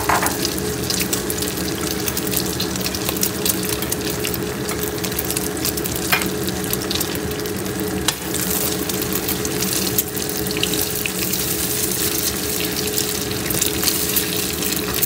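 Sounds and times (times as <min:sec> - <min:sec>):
egg sizzling in hot oil: 0:00.0 - 0:15.0.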